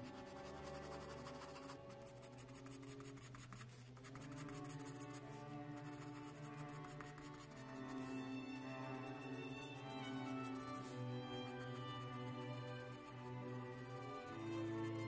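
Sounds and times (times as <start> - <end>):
pencil scratching on paper: 0.0 - 8.2, 11.5 - 15.0
background music with held notes: 0.0 - 15.0.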